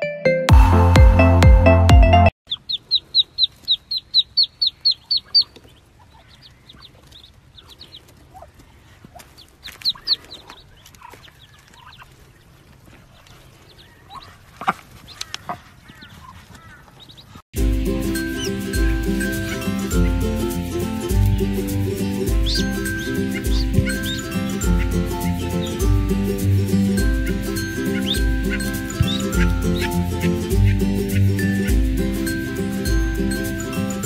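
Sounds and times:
music: 0.0s - 2.4s, 17.6s - 34.0s
ducklings peeping: 2.5s - 34.0s.

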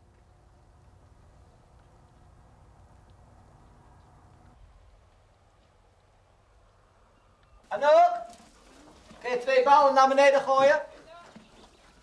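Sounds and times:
man calling out loudly: 7.7s - 8.4s, 9.2s - 11.4s.

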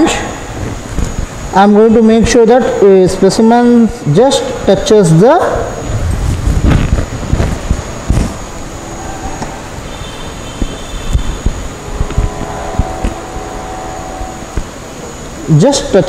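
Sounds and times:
background hum: 0.0s - 16.0s
faint high whine: 0.0s - 16.0s.

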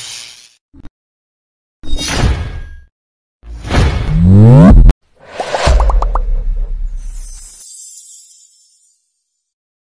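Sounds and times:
whoosh: 4.0s - 7.5s
short rising pops: 4.1s - 6.8s.

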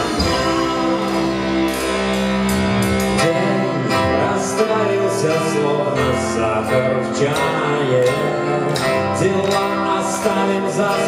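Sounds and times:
rock band playing instrumental: 0.0s - 11.0s.

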